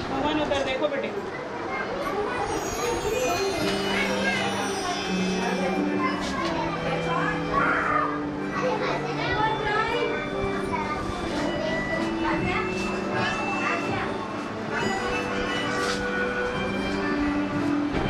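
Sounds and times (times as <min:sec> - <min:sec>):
children chattering and calling out: 0:00.0 - 0:18.0
music with long held notes: 0:02.6 - 0:18.0.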